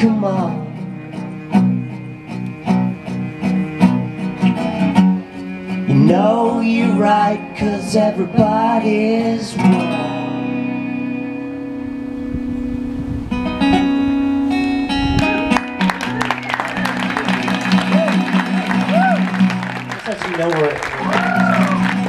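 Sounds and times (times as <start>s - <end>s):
acoustic guitar and cello playing: 0.0s - 22.0s
listeners whooping: 15.7s - 22.0s.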